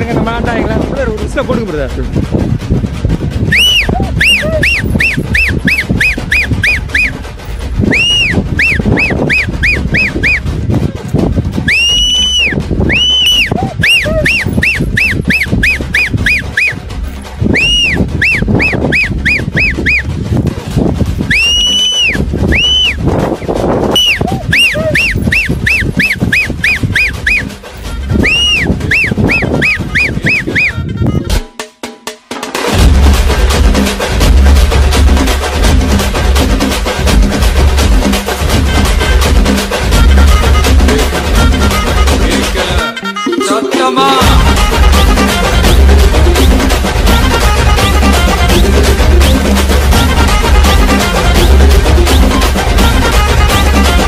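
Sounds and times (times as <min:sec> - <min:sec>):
music with steady beat: 0:00.0 - 0:54.0
two-finger whistle calls: 0:03.5 - 0:07.2, 0:07.9 - 0:10.4, 0:11.6 - 0:16.8, 0:17.5 - 0:20.1, 0:21.3 - 0:23.0, 0:23.9 - 0:27.6, 0:28.2 - 0:31.4, 0:49.2 - 0:49.5.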